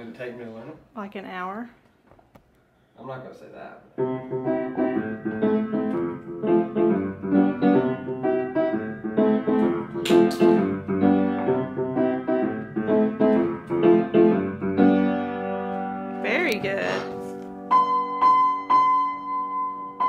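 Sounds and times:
upright piano tune: 0:03.9 - 0:20.0.

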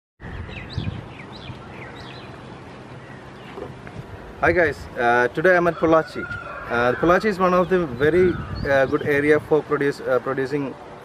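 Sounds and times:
bird calling: 0:00.2 - 0:04.3, 0:05.1 - 0:09.1
steady background hiss: 0:01.0 - 0:11.0.

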